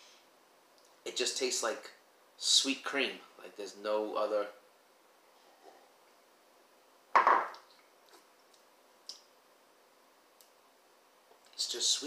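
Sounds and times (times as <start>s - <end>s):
glass mug clunking on stone: 7.2s - 7.6s.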